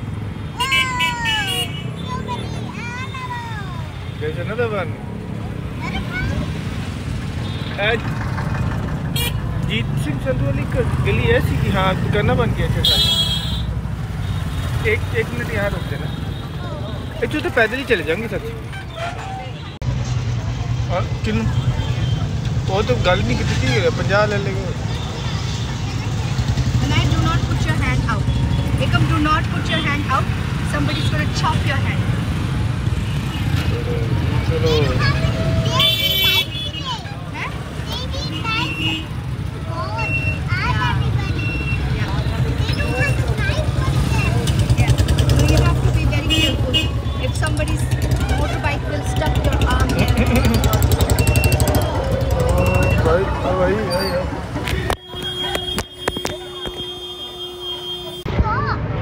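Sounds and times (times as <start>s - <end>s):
auto-rickshaw engine rumble: 0.0s - 59.0s
passing motorbikes: 0.0s - 59.0s
street traffic: 0.0s - 59.0s
voices: 0.4s - 13.8s, 14.6s - 59.0s.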